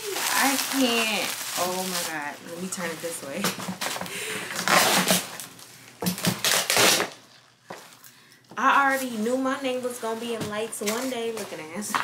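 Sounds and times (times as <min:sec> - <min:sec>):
person speaking: 0:00.0 - 0:03.4
plastic packaging crinkling: 0:00.0 - 0:08.1, 0:08.8 - 0:12.0.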